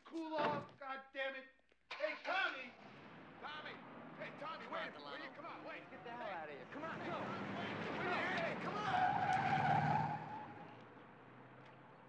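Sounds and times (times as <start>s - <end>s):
car tyres squealing: 1.9s - 11.1s.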